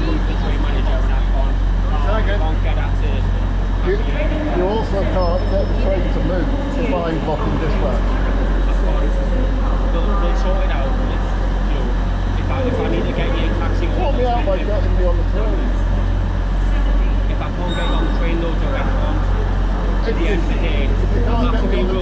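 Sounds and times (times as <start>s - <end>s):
indistinct voices: 0.0s - 22.0s
train engine humming: 0.0s - 22.0s.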